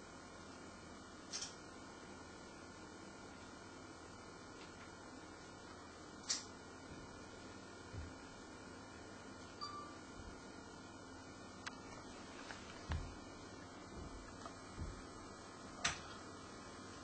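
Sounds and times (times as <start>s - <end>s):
small clicks: 1.3s - 1.6s
soft low thumps: 12.8s - 15.2s.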